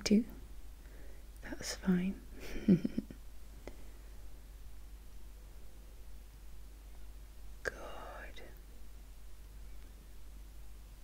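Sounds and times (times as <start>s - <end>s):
woman whispering: 1.4s - 2.2s, 7.6s - 8.6s.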